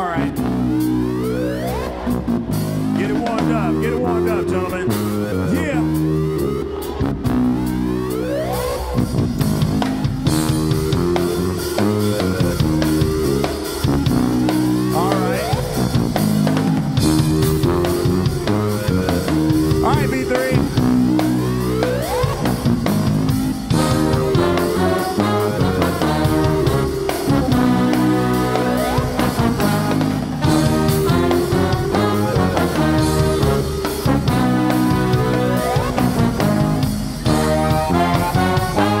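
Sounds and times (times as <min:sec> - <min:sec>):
bass chords: 0:00.0 - 0:39.0
electric keyboard chords: 0:00.0 - 0:39.0
drum kit beat: 0:02.3 - 0:39.0.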